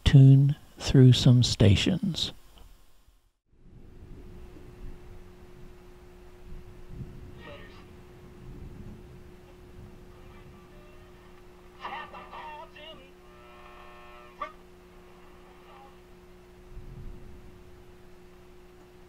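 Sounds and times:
steady hum: 0.0 - 19.0
radio tuning across stations: 10.1 - 13.5, 14.3 - 16.0.

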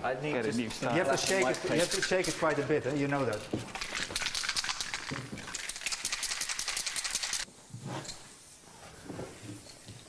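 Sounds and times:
spray can rattling: 0.6 - 7.5
spray paint can hissing: 3.6 - 8.6.

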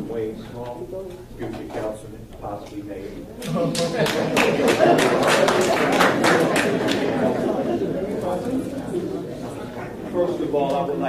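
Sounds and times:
low murmured voices: 0.0 - 11.0.

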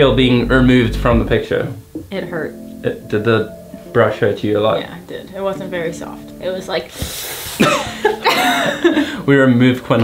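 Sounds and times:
breathy hiss from mouth: 6.9 - 8.1
person laughing: 7.6 - 9.2.

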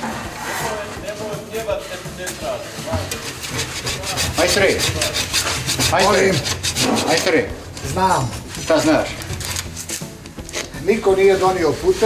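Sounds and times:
scraper rasping on glass: 2.9 - 8.0.

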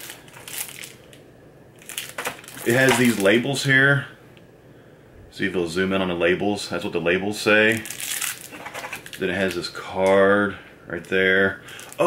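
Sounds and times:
plastic packet crinkling: 0.0 - 1.2, 1.8 - 3.4, 7.7 - 10.4, 11.0 - 12.0.

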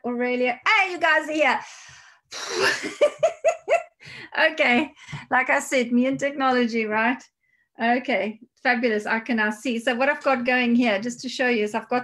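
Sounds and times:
woman laughing: 2.4 - 4.9.

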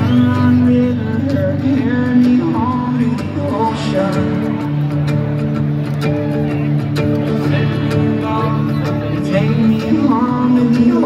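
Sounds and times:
live reggae band music: 0.0 - 11.0.

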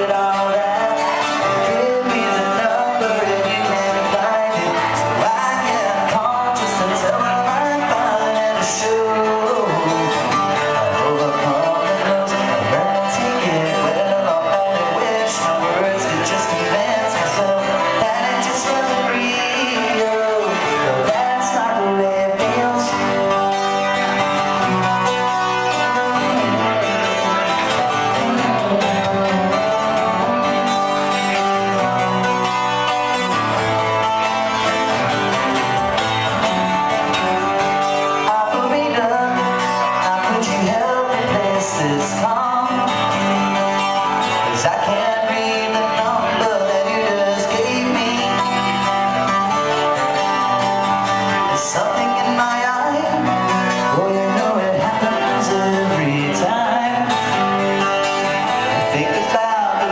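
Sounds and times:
man singing folk ballad: 0.0 - 37.0, 37.7 - 59.9
twelve-string acoustic guitar: 0.0 - 59.9.

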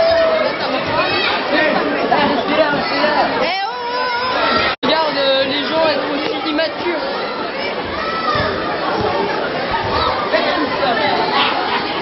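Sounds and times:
young voices chattering: 0.0 - 12.0.

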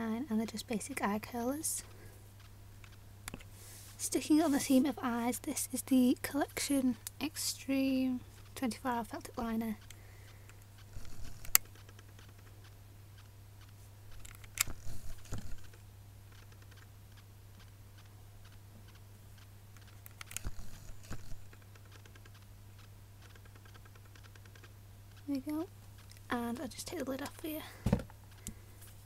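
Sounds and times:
steady low hum: 0.0 - 29.0
pen clicking and rattling: 14.1 - 16.9, 19.8 - 22.4, 23.2 - 24.7.

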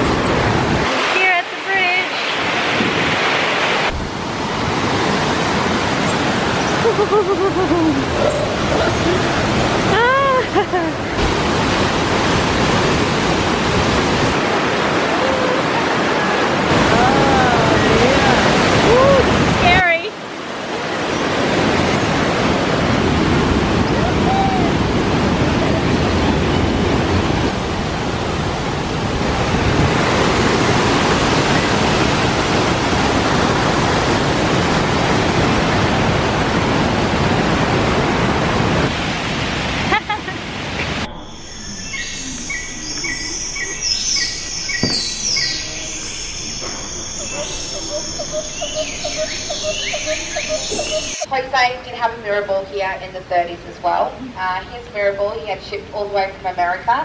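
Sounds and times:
waterfall roaring: 0.0 - 51.4
high falling whistles: 41.0 - 51.3
low chirps: 41.0 - 51.3.

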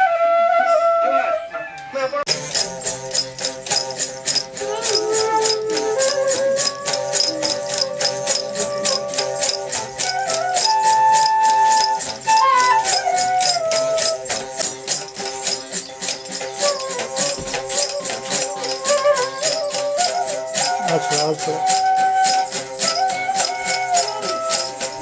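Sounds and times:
sliding melody of held notes: 0.0 - 25.0
rattle shaken in steady beat: 2.3 - 25.0.

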